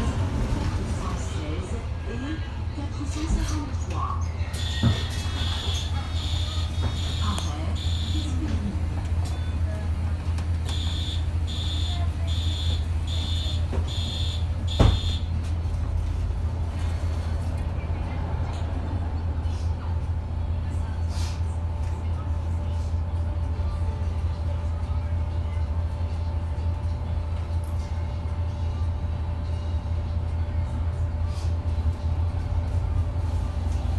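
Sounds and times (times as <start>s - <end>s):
bus engine running: 0.0s - 33.9s
high warning beeps: 4.6s - 8.4s, 10.7s - 15.3s.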